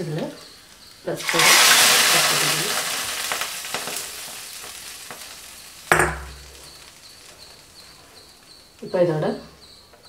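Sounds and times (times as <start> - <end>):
hot oil sizzling: 0.0 - 9.9
metal clank ringing: 5.9 - 6.8.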